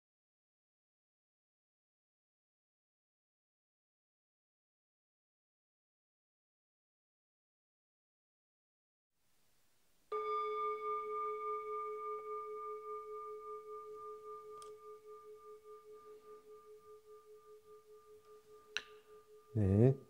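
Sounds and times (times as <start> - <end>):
singing bowl ringing: 10.1 - 19.9.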